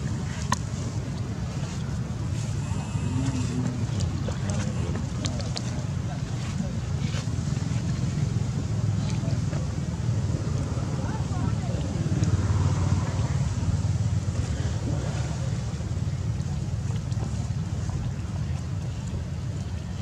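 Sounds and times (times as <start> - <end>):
distant voices murmuring: 0.0 - 20.0
wind rumble on microphone: 0.0 - 20.0.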